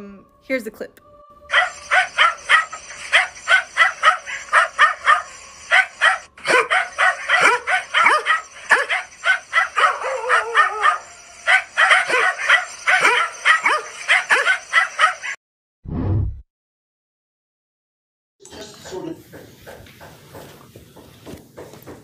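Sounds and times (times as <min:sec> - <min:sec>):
dogs barking and yelping: 0:01.4 - 0:15.4.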